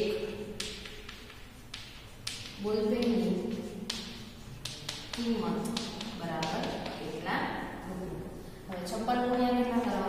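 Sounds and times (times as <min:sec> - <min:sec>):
woman speaking: 0:00.0 - 0:00.4, 0:02.6 - 0:03.7, 0:05.2 - 0:10.0
chalk scratching on a chalkboard: 0:00.0 - 0:10.0.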